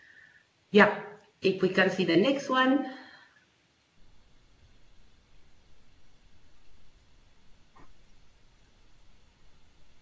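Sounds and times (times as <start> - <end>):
low hum: 4.0 - 10.0.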